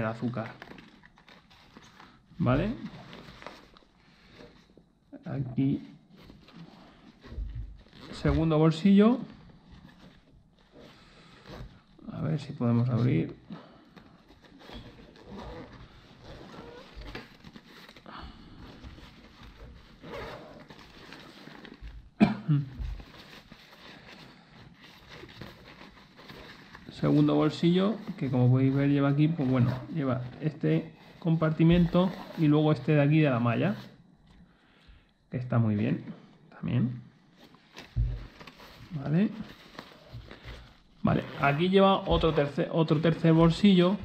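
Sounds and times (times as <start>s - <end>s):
fabric rustling: 0.0s - 34.2s, 37.2s - 44.0s
backpack fabric rustling and clicks: 13.2s - 22.2s, 37.5s - 44.0s
zipper opening: 14.5s - 18.0s, 19.4s - 21.8s, 27.8s - 32.9s, 39.4s - 44.0s.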